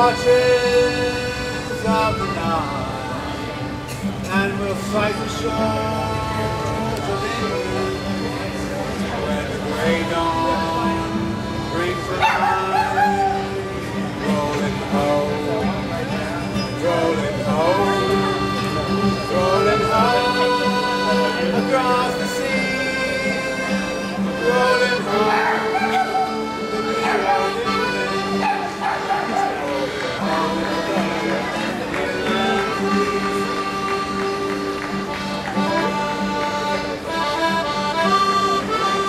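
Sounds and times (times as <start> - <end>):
accordion chords: 0.0 - 39.0
acoustic guitar: 0.0 - 39.0
high wavering yelp: 10.6 - 14.3, 22.2 - 31.5.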